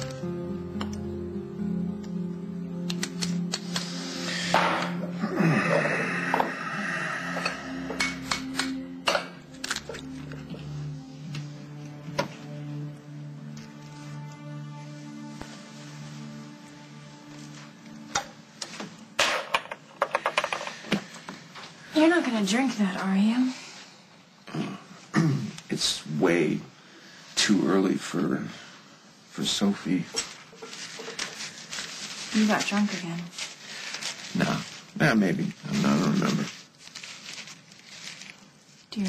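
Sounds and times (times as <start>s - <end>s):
soft background score: 0.0s - 39.0s.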